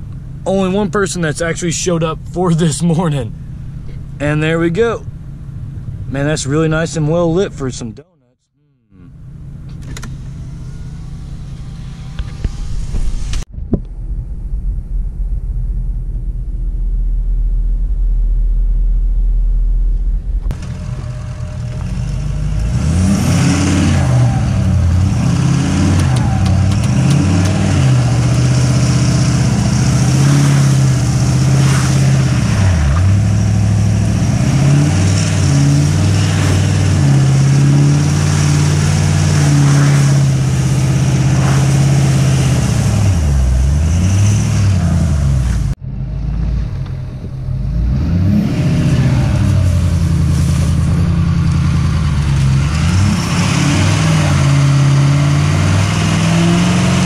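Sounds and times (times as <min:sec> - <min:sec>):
truck engine revving: 0:08.5 - 0:57.0
diesel truck engine idling: 0:13.9 - 0:23.1, 0:49.0 - 0:53.2
tyre hiss on snow: 0:49.6 - 0:51.0.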